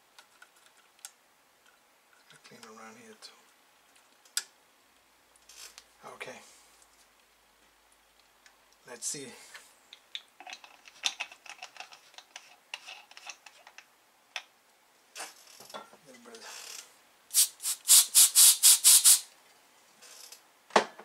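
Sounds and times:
aerosol spray hissing bursts: 0:17.3 - 0:19.3.

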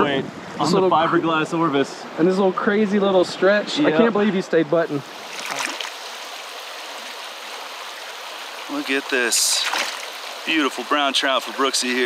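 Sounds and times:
stream water flowing: 0:00.3 - 0:12.0.

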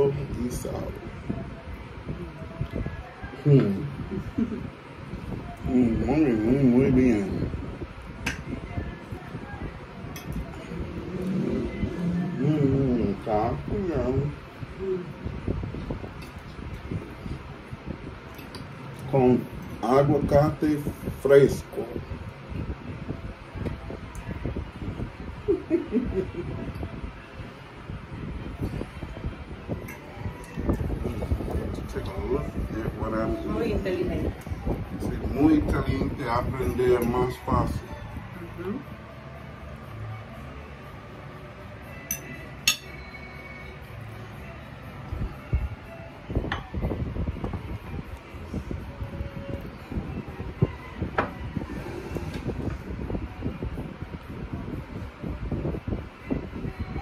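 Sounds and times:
fan hum: 0:00.0 - 0:57.0.

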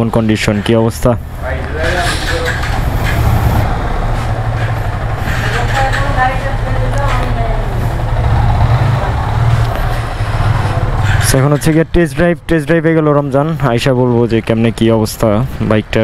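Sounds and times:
motorcycle engine droning: 0:00.6 - 0:14.7.

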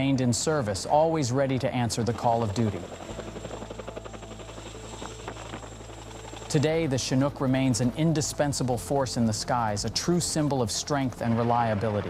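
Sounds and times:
helicopter rotor drone: 0:00.0 - 0:12.0.

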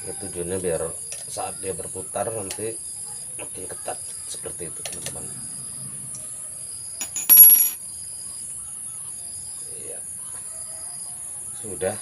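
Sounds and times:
metal key clinking on tile: 0:07.0 - 0:07.8.

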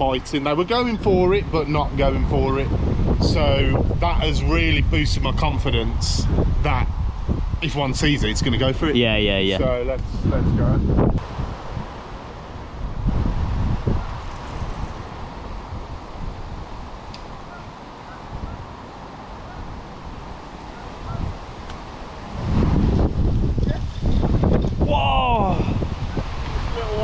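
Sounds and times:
steady wind hiss: 0:00.0 - 0:27.0
wind buffeting microphone: 0:00.0 - 0:27.0.

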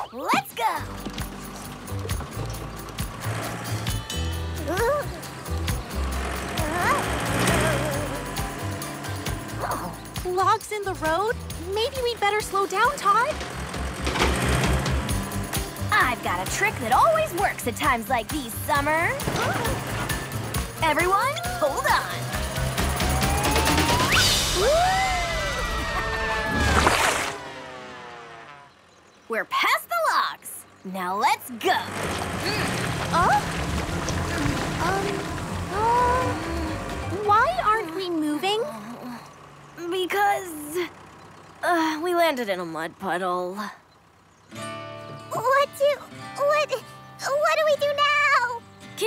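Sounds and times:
tractor engine chugging: 0:00.0 - 0:26.4, 0:30.6 - 0:49.0
cartoon music: 0:04.0 - 0:13.4, 0:15.9 - 0:27.1.

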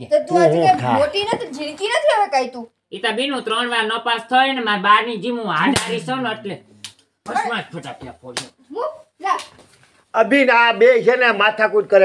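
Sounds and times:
person speaking: 0:00.0 - 0:02.2
sharp slap: 0:05.6 - 0:06.1.

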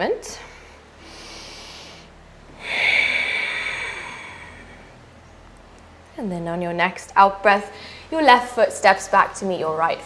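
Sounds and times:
woman breathing: 0:00.3 - 0:05.1, 0:07.7 - 0:08.2.

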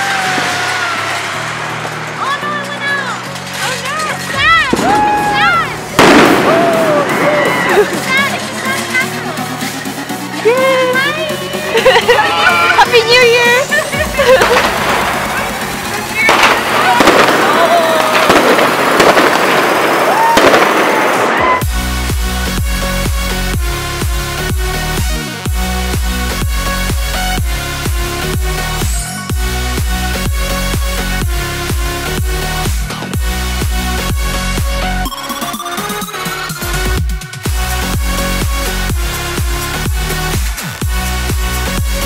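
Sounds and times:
rising firework whistles: 0:00.0 - 0:08.1, 0:14.2 - 0:21.8
fireworks bangs: 0:00.0 - 0:09.9, 0:12.8 - 0:22.2
electronic music: 0:00.0 - 0:19.3, 0:21.4 - 0:42.0
firecrackers crackling: 0:00.0 - 0:42.0.

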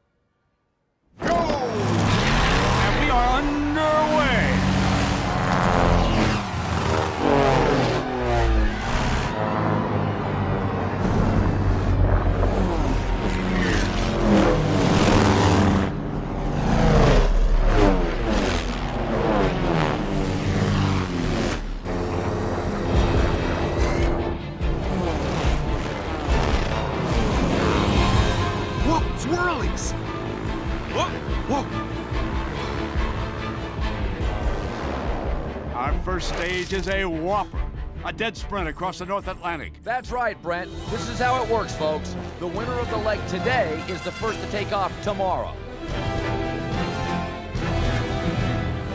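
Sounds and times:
film score music: 0:01.1 - 0:48.9
propeller plane engines racing past: 0:01.6 - 0:36.5.

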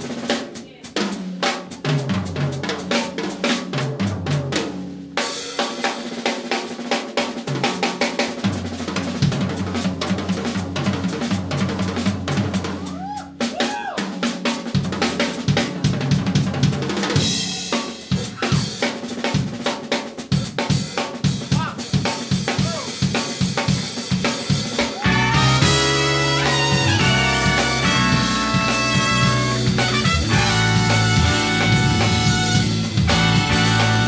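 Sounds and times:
drum kit solo: 0:00.0 - 0:34.0.

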